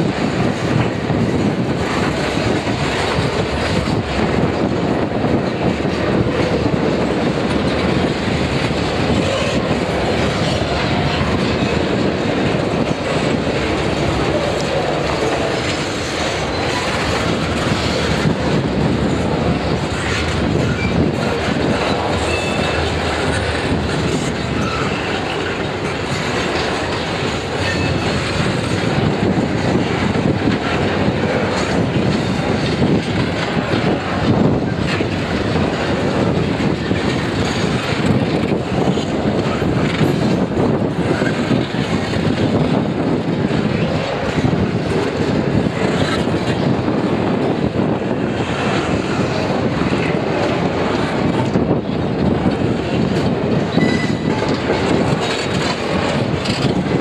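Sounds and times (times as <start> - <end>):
steel wheels rumbling on rail: 0.0 - 57.0
wheels clacking over rail joints: 0.0 - 57.0.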